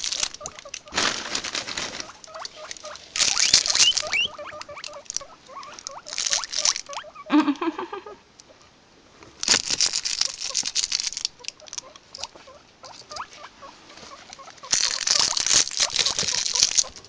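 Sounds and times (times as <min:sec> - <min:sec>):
rustling in wood shavings: 0:00.0 - 0:07.1, 0:09.2 - 0:17.0
guinea pig squeaks: 0:00.0 - 0:07.3, 0:10.2 - 0:17.0
low guinea pig call: 0:00.0 - 0:08.2, 0:11.4 - 0:17.0.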